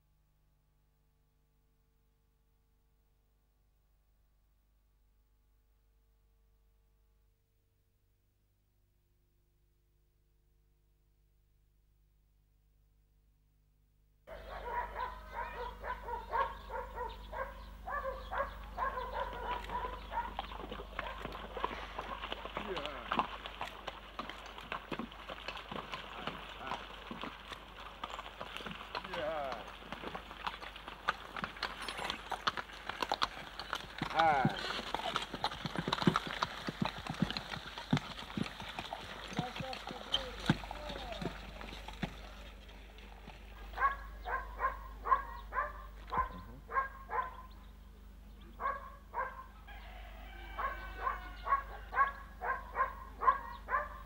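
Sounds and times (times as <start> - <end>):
horse hooves clopping on dirt: 14.3 - 47.7, 48.3 - 54.0.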